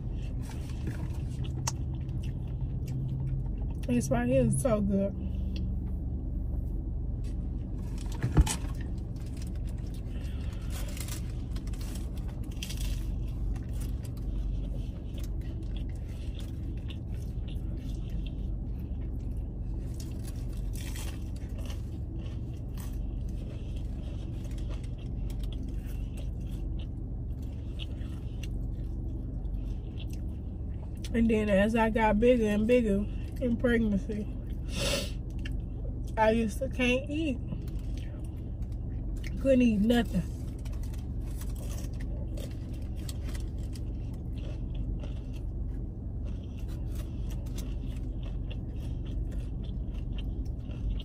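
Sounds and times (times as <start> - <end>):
car cabin rumble: 0.0 - 51.0.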